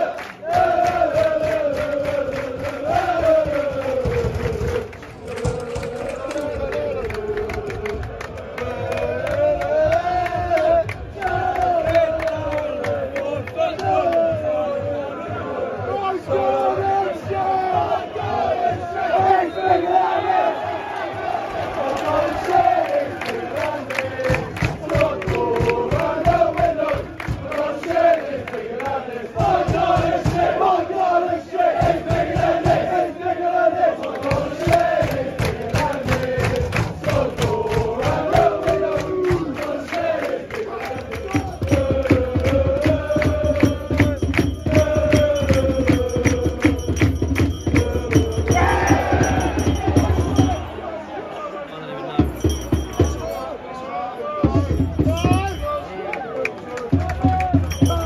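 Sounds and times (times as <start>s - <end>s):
rhythmic clapping: 0.0s - 15.0s, 20.9s - 50.7s, 54.5s - 58.0s
football crowd singing a chant: 0.0s - 58.0s.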